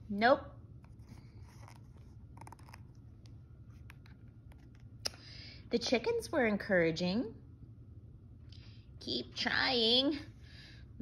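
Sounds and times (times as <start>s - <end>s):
low steady hum: 0.0s - 11.0s
paper page rustling: 0.9s - 4.9s.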